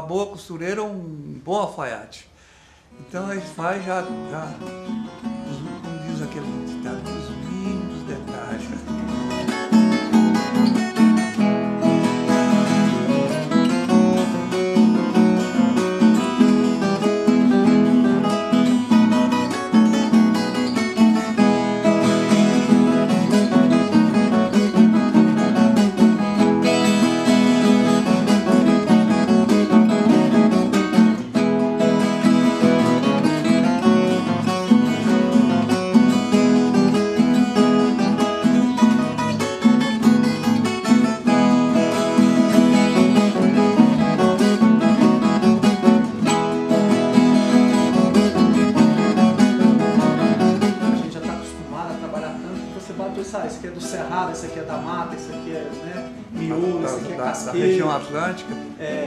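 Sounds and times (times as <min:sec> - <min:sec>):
nylon-string guitar: 0:00.0 - 0:59.0
viola caipira: 0:03.0 - 0:59.0.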